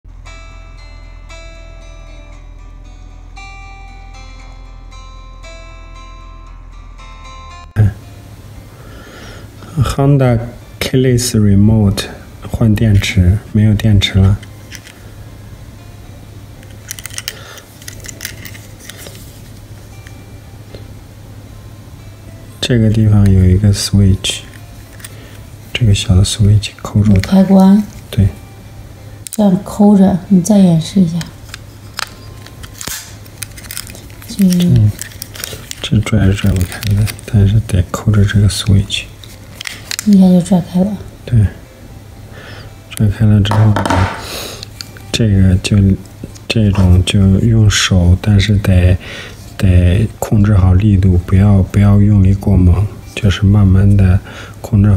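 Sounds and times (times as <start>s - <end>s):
steady low hum: 0.1s - 54.9s
person talking: 25.7s - 28.4s, 34.3s - 35.0s, 35.8s - 39.2s, 40.0s - 41.6s, 42.9s - 44.2s.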